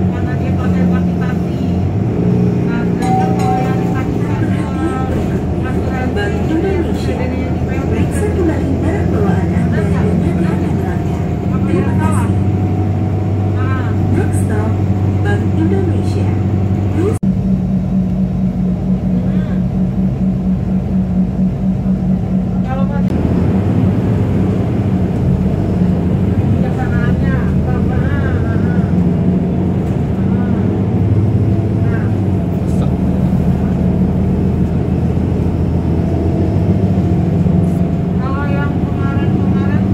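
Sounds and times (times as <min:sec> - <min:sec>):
bus engine drone and road noise: 0:00.0 - 0:39.9
indistinct voices: 0:02.6 - 0:12.6.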